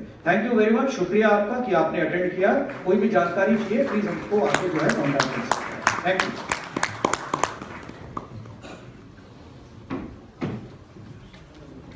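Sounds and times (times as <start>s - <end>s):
room noise: 0.0s - 11.9s
audience applause: 2.5s - 8.5s.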